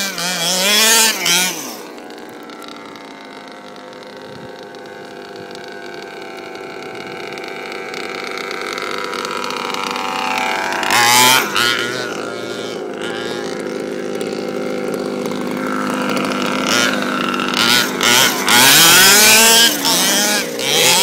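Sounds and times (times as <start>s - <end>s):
two-stroke engine revving: 0.0s - 21.0s.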